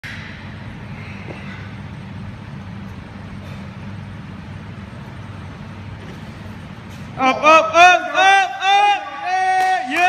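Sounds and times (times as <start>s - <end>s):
low mechanical hum and rumble: 0.0s - 10.0s.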